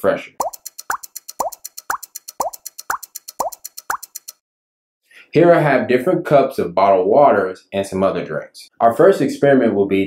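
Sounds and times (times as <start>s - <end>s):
bubble plops: 0.4s - 4.2s
fast high ticking: 0.4s - 4.4s.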